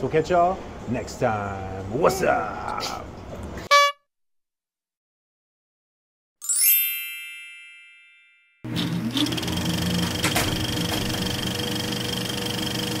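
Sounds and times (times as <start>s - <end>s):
bell-like chime: 6.4s - 8.7s.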